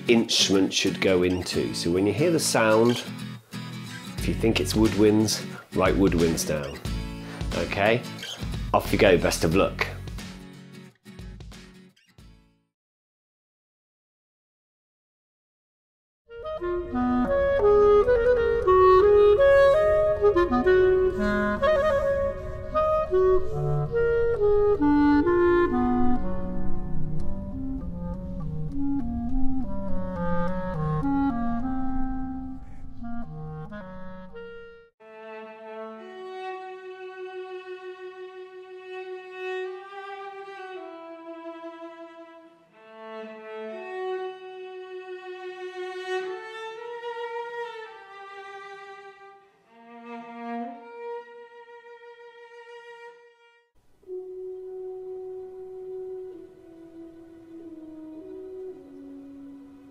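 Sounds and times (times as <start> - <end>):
bowed string notes: 0.0 - 3.4, 4.2 - 10.0, 16.3 - 59.9
low woodwind notes: 16.3 - 34.9, 54.0 - 59.9.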